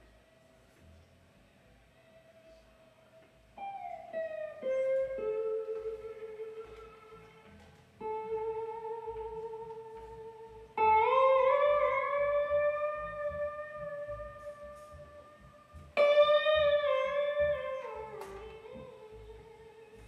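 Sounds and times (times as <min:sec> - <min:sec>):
electric guitar blues solo: 0:03.6 - 0:20.0
upright bass line: 0:10.0 - 0:19.6.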